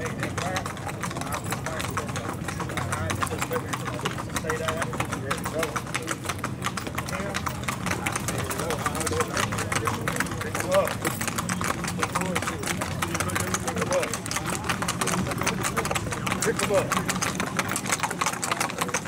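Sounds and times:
horse hoofbeats on pavement: 0.0s - 19.0s.

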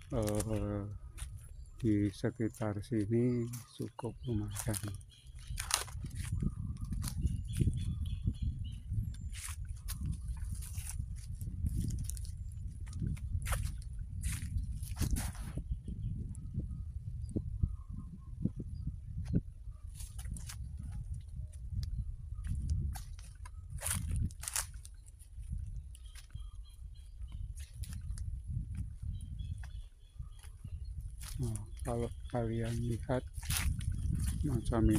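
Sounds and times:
footsteps through grass: 0.0s - 1.9s, 4.4s - 7.7s, 9.3s - 15.6s, 22.4s - 26.4s, 27.1s - 34.9s
wind buffeting microphone: 0.0s - 34.9s.

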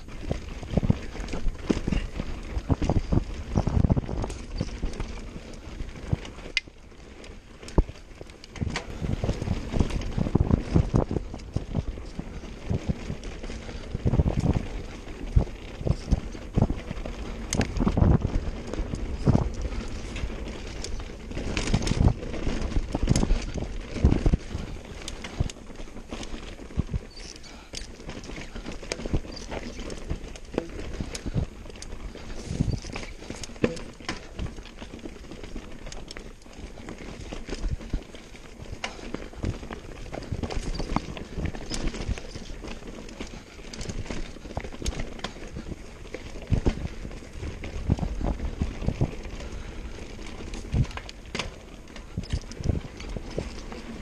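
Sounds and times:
mountain bike rattling and knocking: 0.0s - 54.0s
tyres rumbling on dirt: 0.0s - 54.0s.

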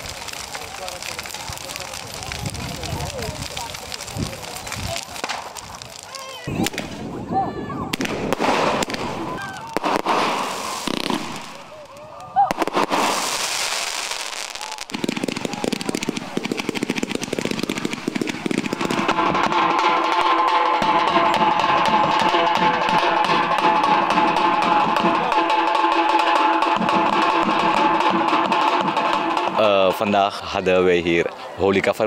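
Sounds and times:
firework rocket bursting: 0.0s - 7.3s, 7.9s - 25.4s
fireworks crackling shots: 0.0s - 30.1s
crowd voices: 0.0s - 32.0s
drum group playing: 14.9s - 30.2s.

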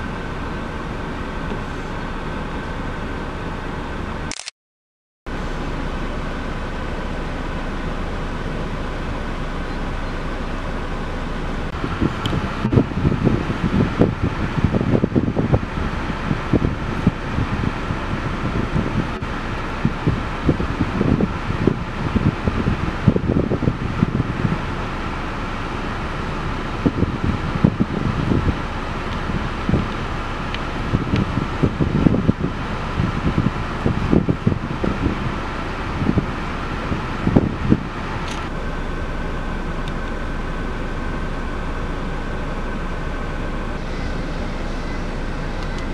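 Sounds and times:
steady mechanical hum: 0.0s - 4.5s, 5.3s - 45.9s
wind buffeting microphone: 9.2s - 38.6s.

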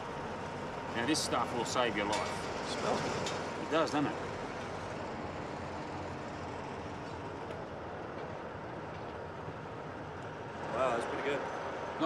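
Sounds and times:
highway traffic rumble: 0.0s - 12.0s.

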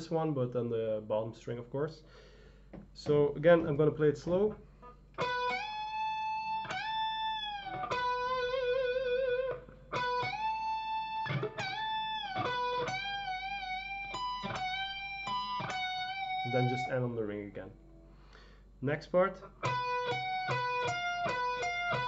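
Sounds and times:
electric guitar lead notes: 4.8s - 17.2s, 19.4s - 22.0s.

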